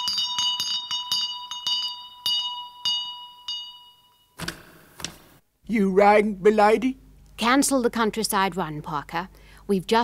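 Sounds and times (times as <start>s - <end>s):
call bell jangling: 0.0s - 4.4s.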